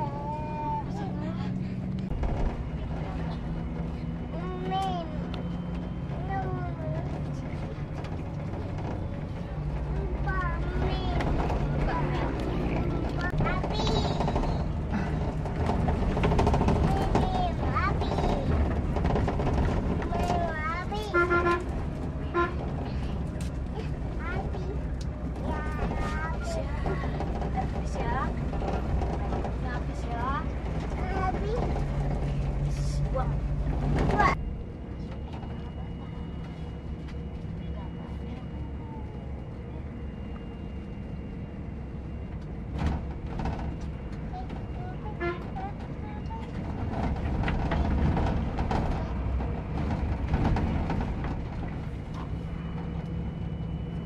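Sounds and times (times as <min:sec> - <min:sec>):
coach engine drone: 0:00.0 - 0:54.0.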